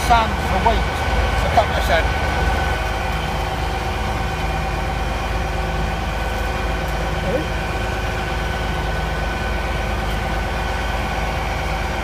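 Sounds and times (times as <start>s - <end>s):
constant high whine: 0.0s - 12.0s
train engines idling drone: 0.0s - 12.0s.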